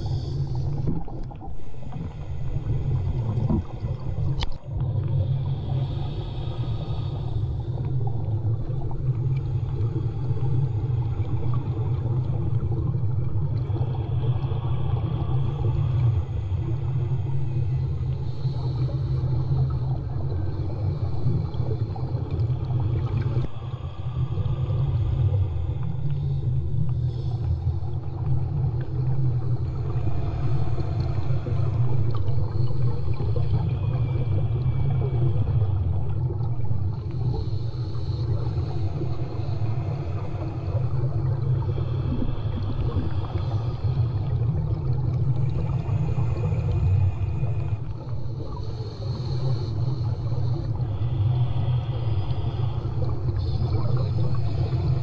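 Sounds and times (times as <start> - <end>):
muffled underwater rumble: 0.0 - 55.0
watery swishes: 0.0 - 55.0.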